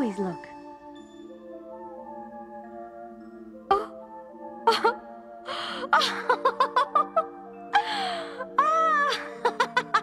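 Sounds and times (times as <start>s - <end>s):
background music: 0.0s - 10.0s
woman giggling: 4.7s - 5.0s, 5.8s - 10.0s
woman gasping: 5.5s - 6.2s, 7.8s - 9.6s.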